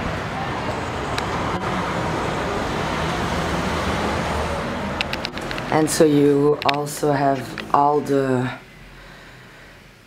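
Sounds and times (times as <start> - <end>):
road traffic rumbling hiss: 0.0 - 10.0.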